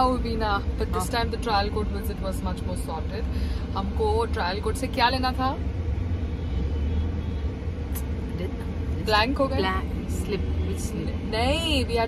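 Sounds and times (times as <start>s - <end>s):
car cabin engine and road rumble: 0.0s - 12.0s.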